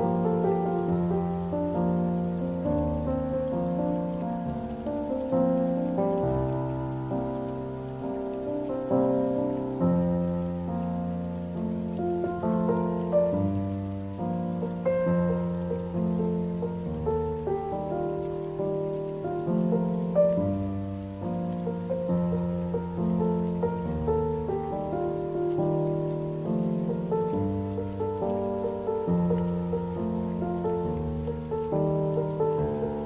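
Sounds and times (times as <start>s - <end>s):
slow gentle piano ballad: 0.0s - 33.0s.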